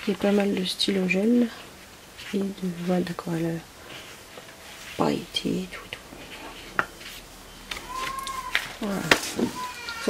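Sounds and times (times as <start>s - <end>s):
woman speaking: 0.0s - 3.7s, 4.8s - 6.2s, 8.8s - 10.0s
cat meowing: 7.8s - 8.8s, 9.4s - 10.0s.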